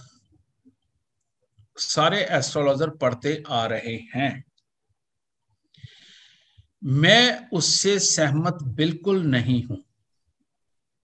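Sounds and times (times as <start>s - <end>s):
man speaking: 1.8s - 4.5s, 6.8s - 9.8s.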